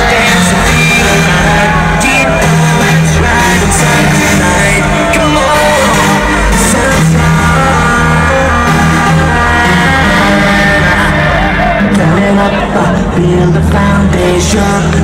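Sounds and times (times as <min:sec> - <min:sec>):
loud hardstyle dance music: 0:00.0 - 0:15.0.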